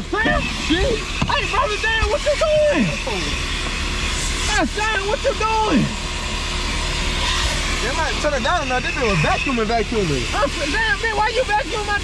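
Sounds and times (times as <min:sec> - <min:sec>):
vacuum hose rushing hiss: 0:00.0 - 0:12.0.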